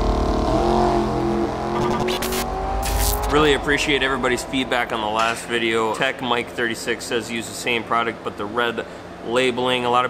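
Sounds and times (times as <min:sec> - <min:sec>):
race car engine: 0:00.0 - 0:06.9.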